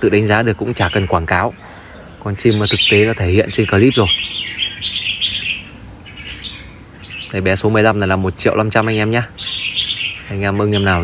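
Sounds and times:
bird singing warbled phrases: 0.0s - 11.0s.

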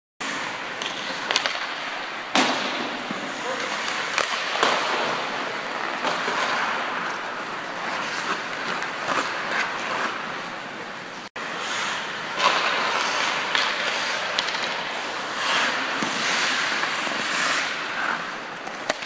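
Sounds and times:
hockey sticks and puck clacking: 0.2s - 19.0s
skates scraping on ice: 0.2s - 19.0s.

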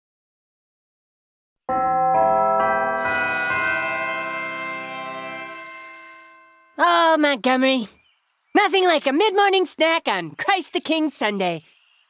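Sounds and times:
church bells ringing: 1.7s - 7.4s.

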